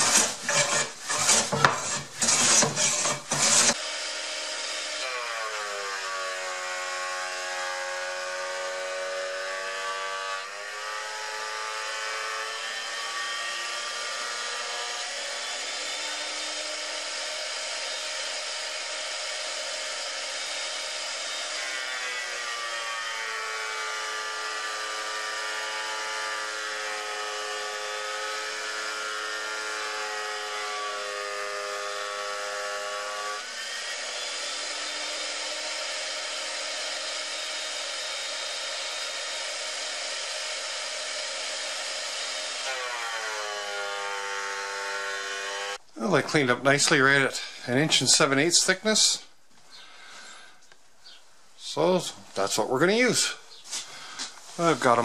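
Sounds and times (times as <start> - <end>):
thickness planer whining: 0.0 - 46.5.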